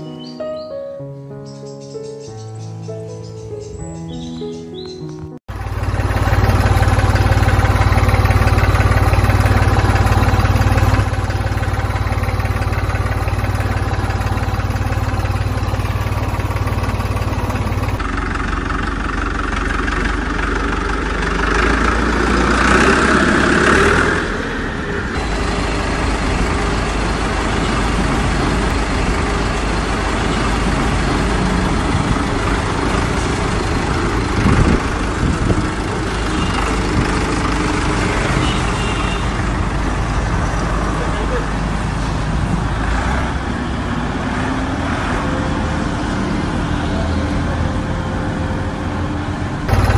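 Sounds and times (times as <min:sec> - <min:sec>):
tractor engine idling: 0:01.8 - 0:43.2, 0:49.7 - 0:49.9.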